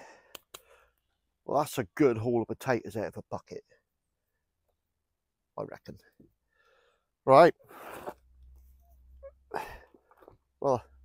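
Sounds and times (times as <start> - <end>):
person sharp breath or sniff: 7.6 - 8.3.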